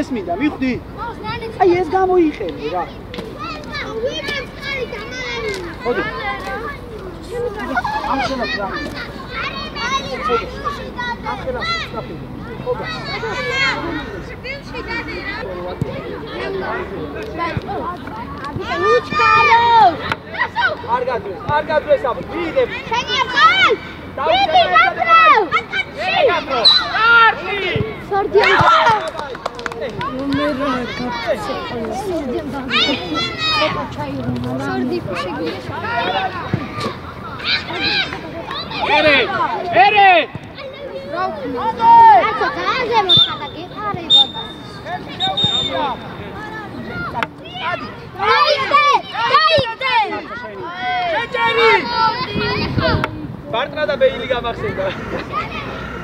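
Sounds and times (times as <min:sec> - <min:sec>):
children calling out and chattering: 0:00.0 - 0:56.0.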